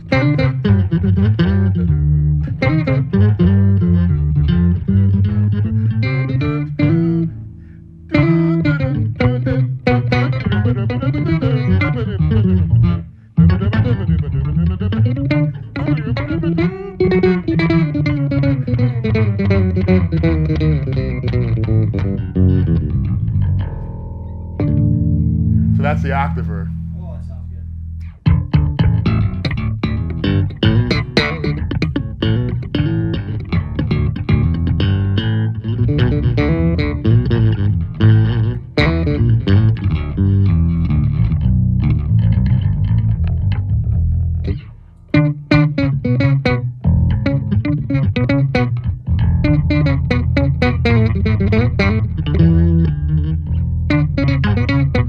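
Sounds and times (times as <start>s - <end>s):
electric bass solo: 0.0s - 55.0s.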